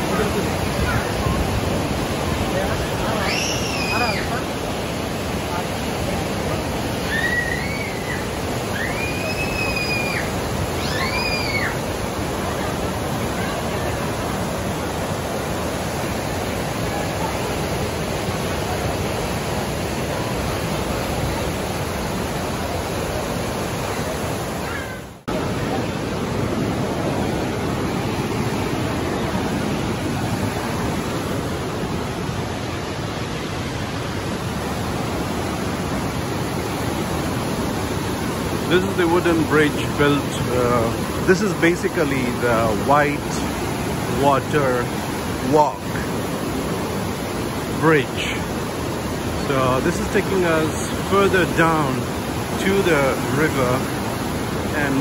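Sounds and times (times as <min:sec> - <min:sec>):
rapids rushing: 0:00.0 - 0:55.0
short high calls: 0:03.2 - 0:04.4.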